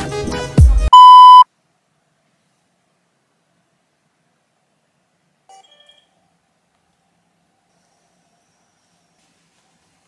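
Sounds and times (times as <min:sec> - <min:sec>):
electronic beep: 0:00.9 - 0:01.4.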